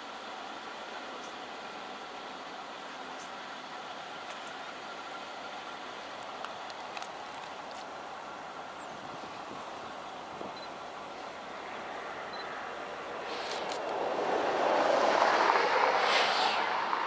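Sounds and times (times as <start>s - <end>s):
diesel locomotive engine: 0.0s - 17.0s.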